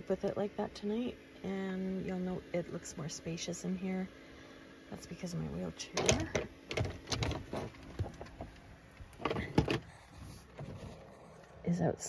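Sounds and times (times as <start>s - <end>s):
electric fan hum: 0.0s - 12.0s
phone handling knocks and rustles: 6.0s - 8.6s, 9.2s - 9.9s.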